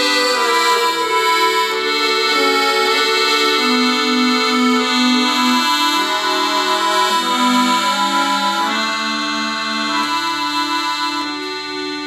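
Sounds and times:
accordion playing held chords: 0.0s - 12.0s.

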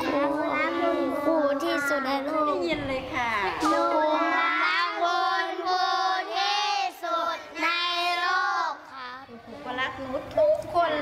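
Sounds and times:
children singing in unison: 0.0s - 2.1s, 3.6s - 9.0s.

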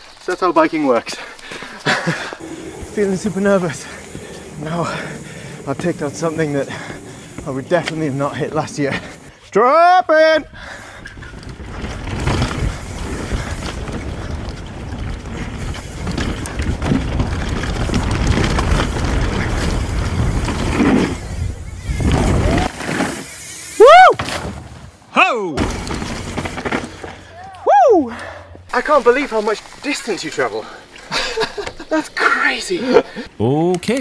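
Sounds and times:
bike tyre and frame rattle: 0.0s - 9.5s, 10.5s - 25.0s, 25.6s - 27.7s, 28.6s - 33.3s
rider whooping: 1.8s - 9.3s, 21.0s - 24.4s, 27.3s - 28.4s
wind rumbling on microphone: 11.0s - 22.7s.

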